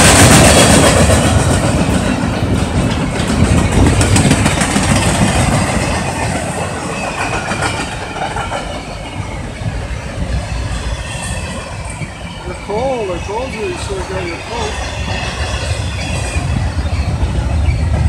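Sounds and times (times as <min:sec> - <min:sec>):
train wheels on rails: 0:00.0 - 0:18.0.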